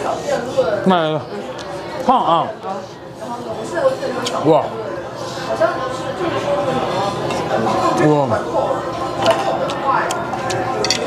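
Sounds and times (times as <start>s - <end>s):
cutlery clicking on plates: 9.2s - 11.0s.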